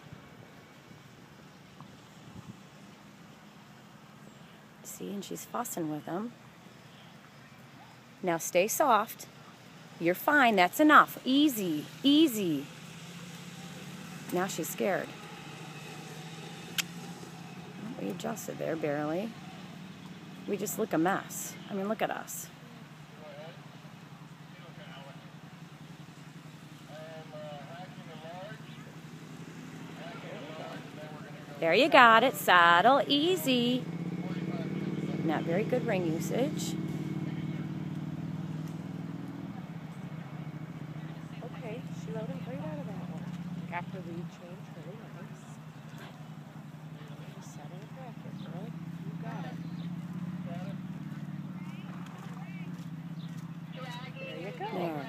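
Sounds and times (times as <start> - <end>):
engine humming: 0.0 - 55.0.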